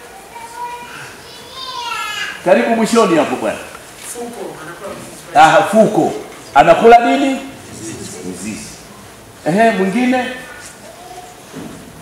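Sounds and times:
distant voices talking over each other: 0:00.0 - 0:11.8.

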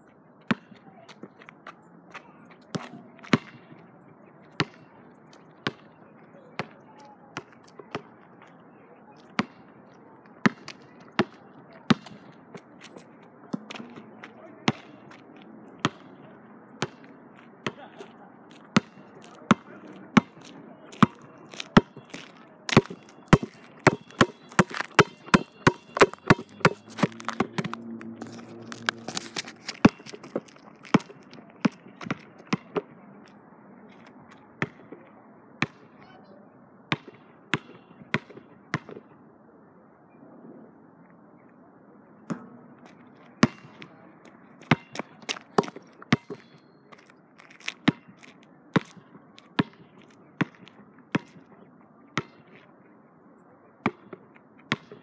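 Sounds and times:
basketball bouncing on hard court: 0:00.5 - 0:00.7, 0:21.0 - 0:32.8, 0:44.6 - 0:46.6, 0:53.8 - 0:55.0.

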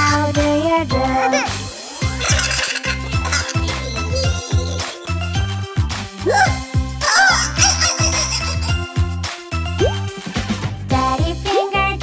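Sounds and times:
upbeat cartoon music: 0:00.0 - 0:12.0
rising cartoon sound effect: 0:02.2 - 0:05.1, 0:06.2 - 0:08.5.

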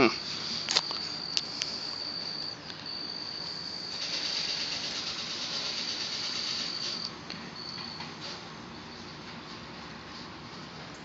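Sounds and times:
insects calling: 0:00.0 - 0:07.8.

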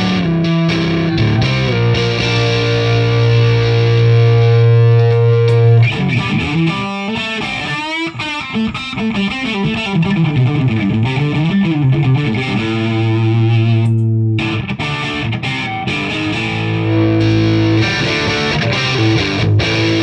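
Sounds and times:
electric guitar chords and runs: 0:00.0 - 0:20.0.

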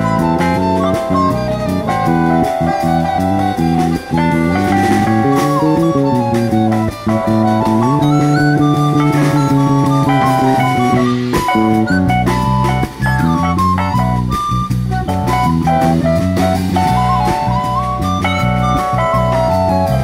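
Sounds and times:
drum kit: 0:00.0 - 0:20.0
flute melody: 0:00.0 - 0:20.0
guitar chords: 0:00.0 - 0:20.0.

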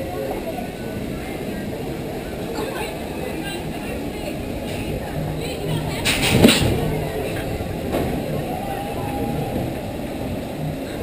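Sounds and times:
roller coaster rolling on track: 0:00.0 - 0:11.0.

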